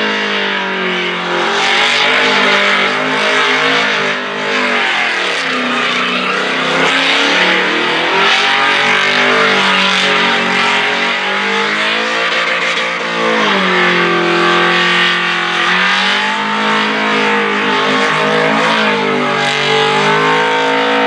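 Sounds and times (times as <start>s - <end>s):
car engine at high revs: 0.0s - 21.0s.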